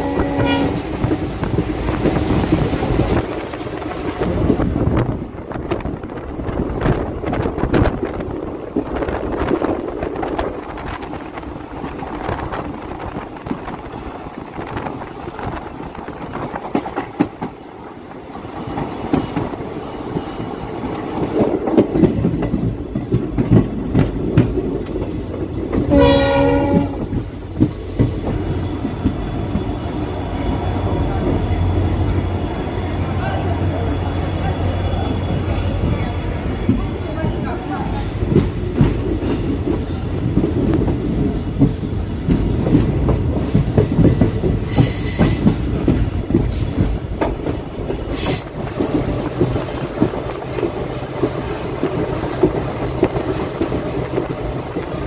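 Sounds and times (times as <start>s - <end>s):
train horn: 0.0s - 0.9s, 25.8s - 27.0s
train wheels clacking on rails: 0.0s - 55.0s.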